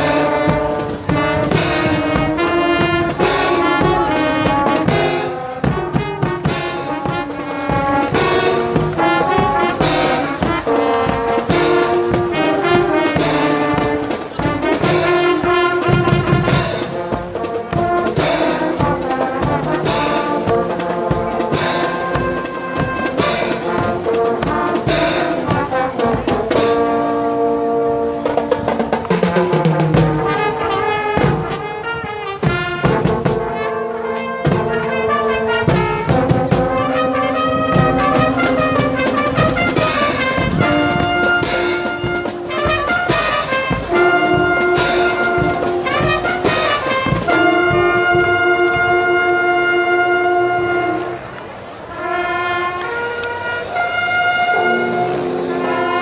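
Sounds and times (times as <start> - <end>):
snare drums: 0.0 - 51.2, 52.0 - 56.0
trumpets and trombones: 0.0 - 56.0.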